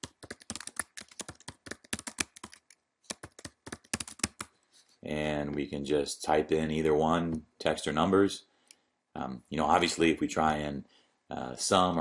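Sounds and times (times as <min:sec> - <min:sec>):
typing on keyboard: 0:00.0 - 0:04.5.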